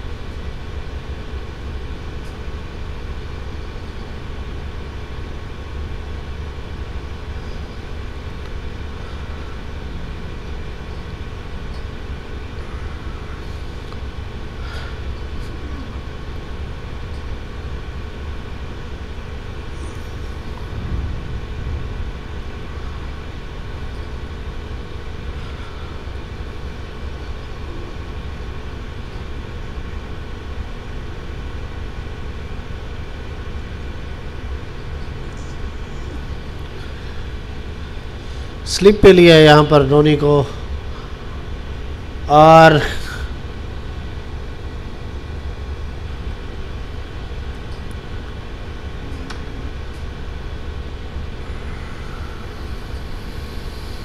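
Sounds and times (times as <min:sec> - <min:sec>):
constant tonal hum: 0:00.0 - 0:54.0
steady low rumble: 0:00.0 - 0:54.0
brief low thump: 0:20.6 - 0:22.1.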